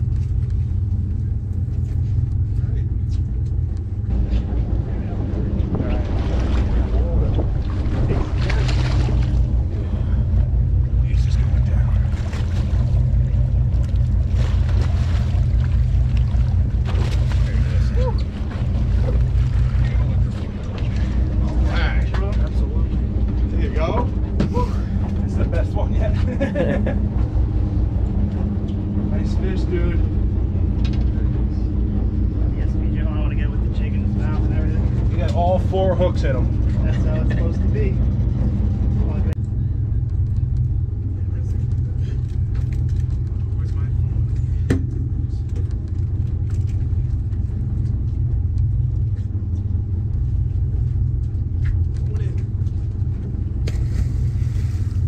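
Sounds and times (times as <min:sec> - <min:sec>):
boat engine rumbling: 0:00.0 - 0:55.0
steady hum: 0:00.0 - 0:55.0.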